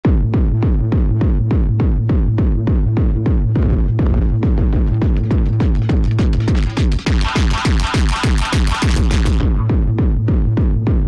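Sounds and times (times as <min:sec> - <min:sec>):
fast electronic kick drum: 0:00.0 - 0:11.0.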